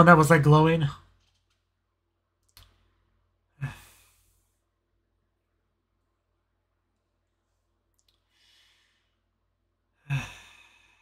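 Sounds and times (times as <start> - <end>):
man sighing: 3.6 - 4.2, 10.0 - 10.9.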